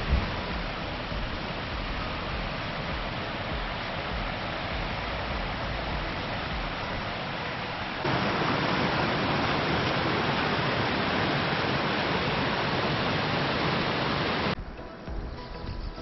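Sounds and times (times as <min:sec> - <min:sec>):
waterfall pouring onto rocks: 0:00.0 - 0:14.6.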